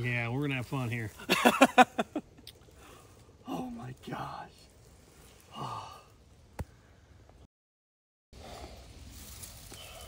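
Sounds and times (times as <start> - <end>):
man laughing: 1.2 - 2.4.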